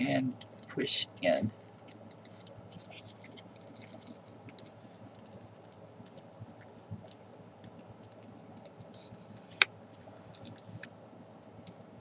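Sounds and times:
paper crinkling: 1.3 - 7.2.

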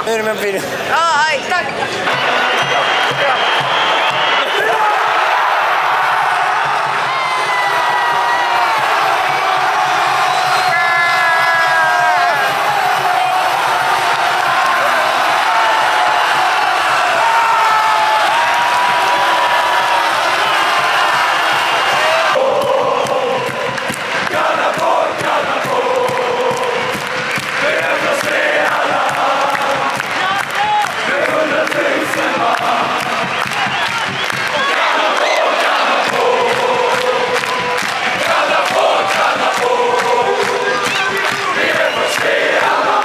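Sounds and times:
stadium crowd cheering: 0.0 - 43.0
crowd singing long notes: 2.0 - 43.0.

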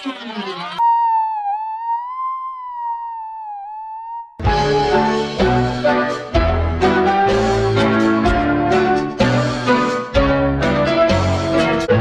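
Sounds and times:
wavering high electronic tone: 0.0 - 4.4.

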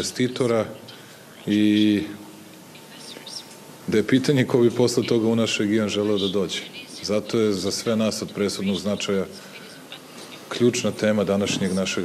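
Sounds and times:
man speaking: 1.4 - 2.3, 3.8 - 9.6, 10.5 - 12.0.

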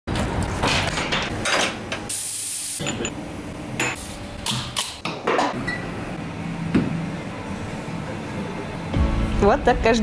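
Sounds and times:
hiss of spray: 2.1 - 2.8.

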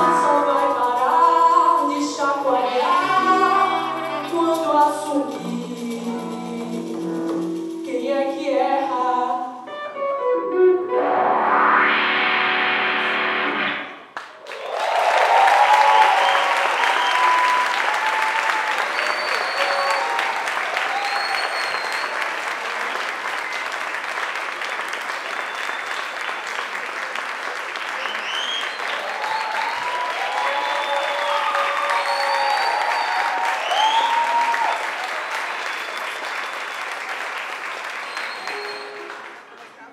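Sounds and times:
live band playing: 0.0 - 14.0, 38.4 - 39.5
audience applause: 14.2 - 39.9
cheers and whistles: 14.5 - 24.0, 25.1 - 26.6, 27.8 - 39.4.

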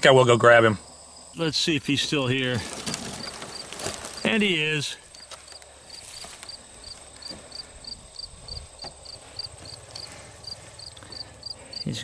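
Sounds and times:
cricket chirping: 0.0 - 12.0
high insect whine: 0.0 - 12.0
faint clicks in dry grass: 5.0 - 7.6, 9.6 - 11.2.

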